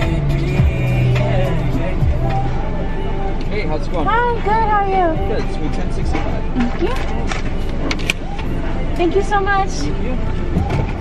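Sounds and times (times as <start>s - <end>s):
car idling: 0.0s - 11.0s.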